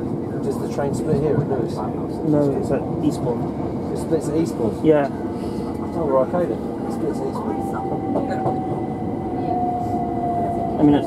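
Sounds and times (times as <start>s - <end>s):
train rumbling on track: 0.0s - 11.0s.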